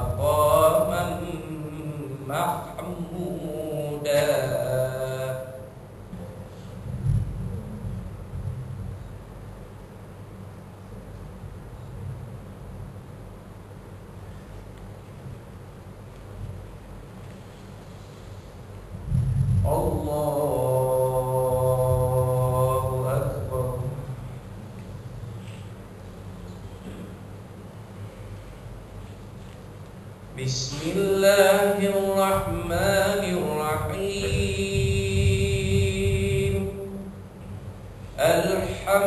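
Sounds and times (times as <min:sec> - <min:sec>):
man chanting recitation: 0:00.0 - 0:06.6, 0:19.6 - 0:24.9, 0:30.3 - 0:37.3, 0:38.0 - 0:39.0.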